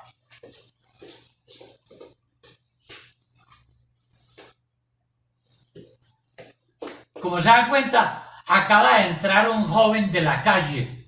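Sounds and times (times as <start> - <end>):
scuffling noises: 0.0 - 4.6, 5.4 - 7.2.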